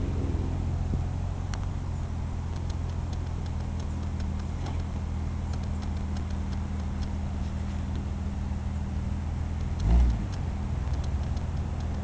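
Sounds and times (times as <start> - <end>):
vehicle engines running under load: 0.0 - 12.0.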